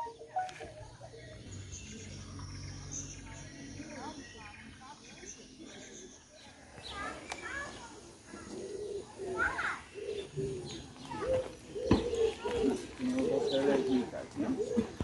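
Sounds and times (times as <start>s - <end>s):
birds cooing: 7.9s - 15.0s.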